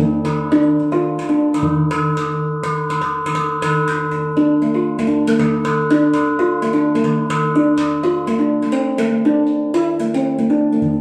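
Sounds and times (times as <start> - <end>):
handpan notes ringing: 0.0 - 11.0.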